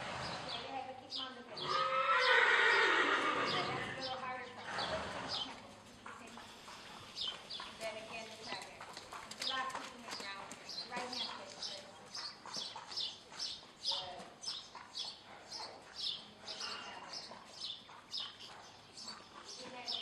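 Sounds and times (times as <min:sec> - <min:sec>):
horse whinnying: 0:01.6 - 0:04.0
hoofbeats: 0:01.6 - 0:20.0.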